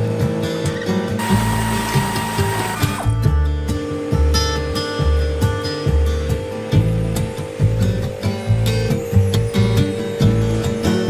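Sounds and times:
background music: 0.0 - 11.0
pneumatic air ratchet whine: 1.2 - 3.2.

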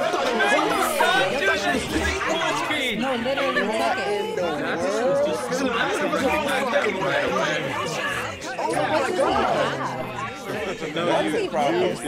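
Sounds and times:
overlapping voices talking: 0.0 - 12.0.

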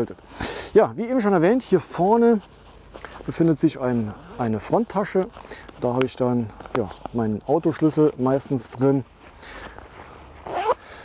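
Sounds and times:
zipper being pulled: 4.0 - 5.8, 9.6 - 11.0.

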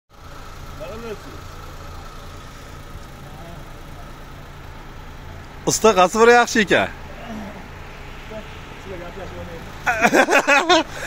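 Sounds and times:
small engine idling: 0.1 - 11.0.

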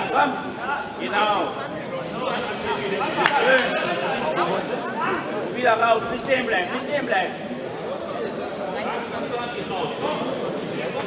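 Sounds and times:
echoing voices and chatter: 0.0 - 11.0.

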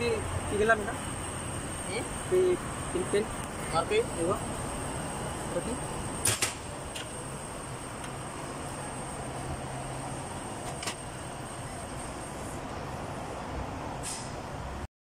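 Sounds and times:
low workshop hum: 0.0 - 14.0
sharp clicks: 6.2 - 7.1.

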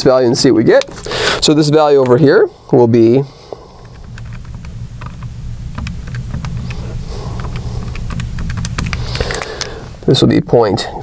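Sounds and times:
steady low hum: 0.0 - 11.0
calculator keys clicking: 3.8 - 9.8.

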